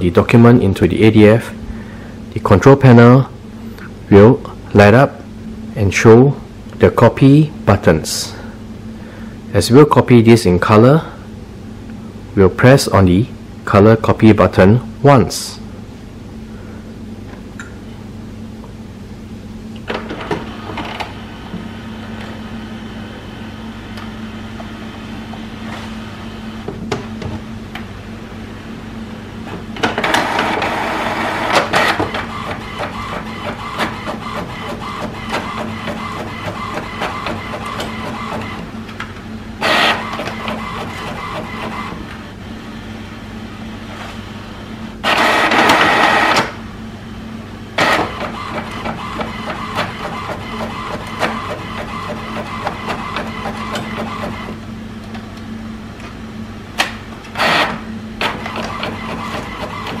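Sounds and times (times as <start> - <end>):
printer motor hum and clatter: 19.7 - 28.2, 28.9 - 46.6, 47.7 - 60.0
printer whirring burst: 29.7 - 38.8, 39.6 - 42.1, 45.0 - 46.6, 47.8 - 54.6, 57.3 - 60.0.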